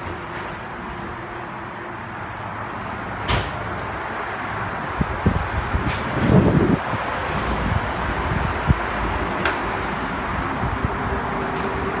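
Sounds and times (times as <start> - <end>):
standing train hum: 0.0 - 12.0
train doors opening rumble: 3.1 - 4.0, 4.8 - 7.7, 11.3 - 12.0.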